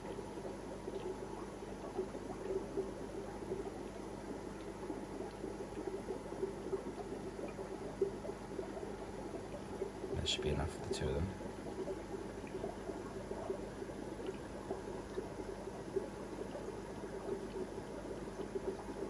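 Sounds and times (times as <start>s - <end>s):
aquarium filter bubbling: 0.0s - 19.0s
faint steady hum: 0.0s - 19.0s.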